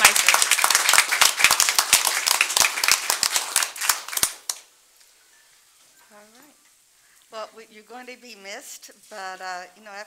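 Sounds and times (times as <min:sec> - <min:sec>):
people clapping: 0:00.0 - 0:04.7.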